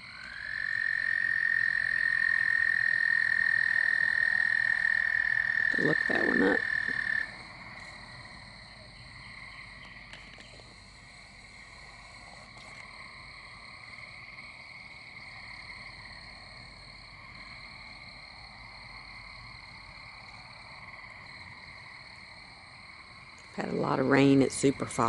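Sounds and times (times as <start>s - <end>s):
toads trilling: 0.0s - 8.3s.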